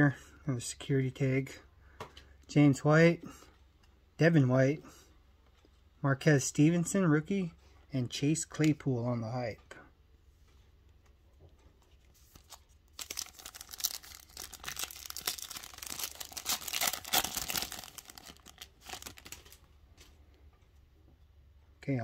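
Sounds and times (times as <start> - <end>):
foil card pack crinkling and tearing: 12.4 - 19.6.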